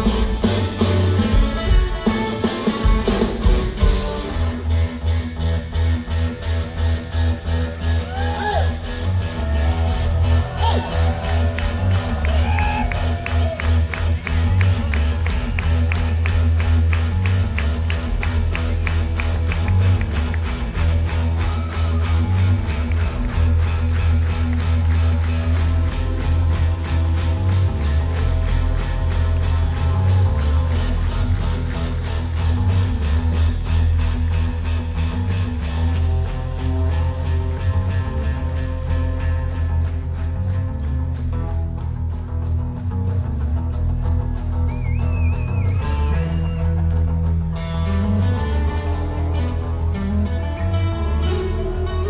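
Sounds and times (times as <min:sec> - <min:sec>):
heavy bass groove: 0:00.0 - 0:52.0
psychedelic rock band playing live: 0:00.0 - 0:52.0.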